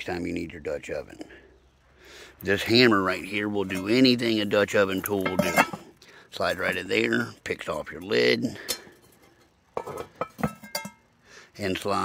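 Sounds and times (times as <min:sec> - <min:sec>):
hammer clinking on iron lid: 0:05.0 - 0:05.8, 0:09.8 - 0:11.0.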